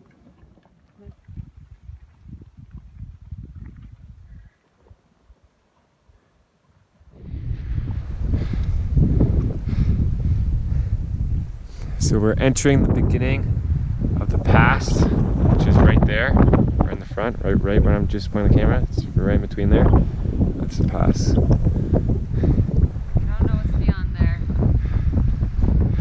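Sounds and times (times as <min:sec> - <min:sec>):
wind buffeting microphone: 0:00.0 - 0:05.5, 0:06.9 - 0:26.0.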